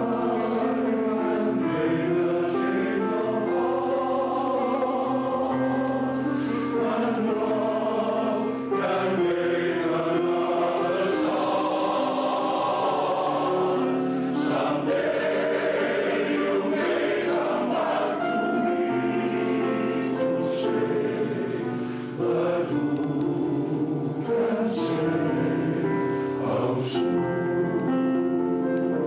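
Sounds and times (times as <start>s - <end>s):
male choir singing in harmony: 0.0s - 29.0s.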